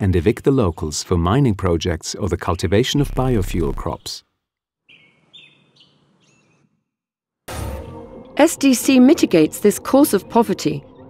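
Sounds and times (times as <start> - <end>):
faint bird-like chirping: 4.9 - 6.7.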